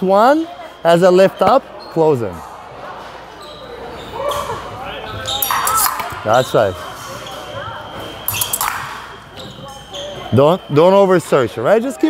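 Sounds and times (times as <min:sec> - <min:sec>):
voices in busy hall: 0:00.0 - 0:12.0.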